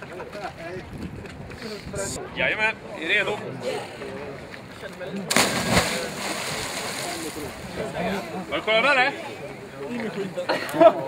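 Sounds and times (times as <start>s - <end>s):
person splashing into water: 5.3s - 7.3s.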